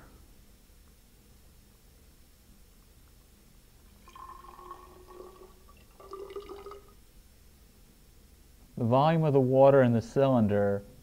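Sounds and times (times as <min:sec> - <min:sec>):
water pouring into a glass cylinder: 0:03.9 - 0:07.0.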